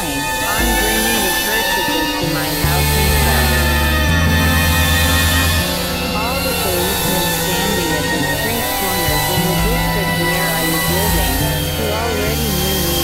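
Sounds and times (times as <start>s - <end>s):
low synthesizer bass tones: 0.0s - 13.0s
warbling synthesizer tones: 0.0s - 13.0s.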